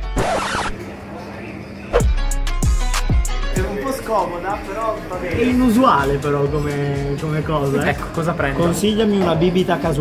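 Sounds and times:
music with a beat: 0:02.0 - 0:03.9.

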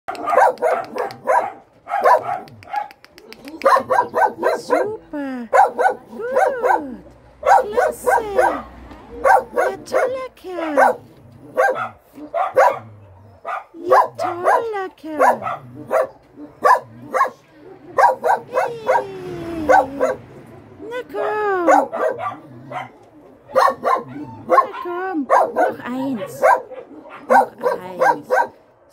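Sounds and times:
dogs barking: 0:00.1 - 0:19.0, 0:19.7 - 0:28.7.

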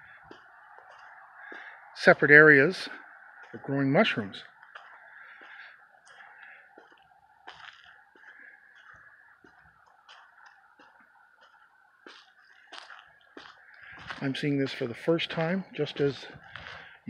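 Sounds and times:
footsteps on asphalt: 0:00.0 - 0:17.0.

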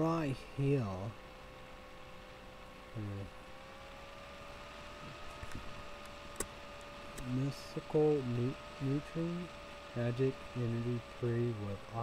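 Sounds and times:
faint electrical hum: 0:00.0 - 0:12.0
thin whining tone: 0:00.0 - 0:12.0.

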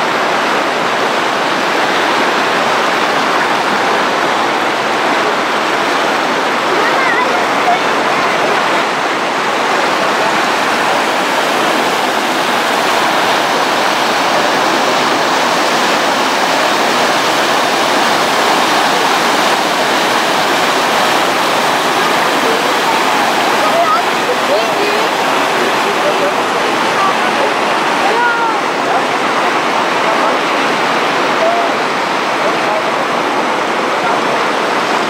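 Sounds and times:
water rushing over weir: 0:00.0 - 0:35.0.

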